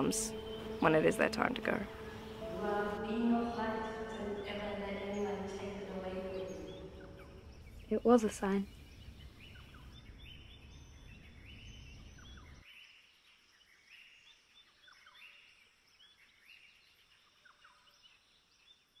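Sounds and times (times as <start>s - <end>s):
faint birds chirping: 0.0s - 19.0s.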